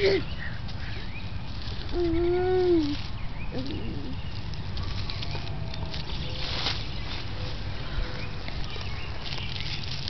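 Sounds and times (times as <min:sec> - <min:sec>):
grass rustling under hands: 0:00.0 - 0:10.0.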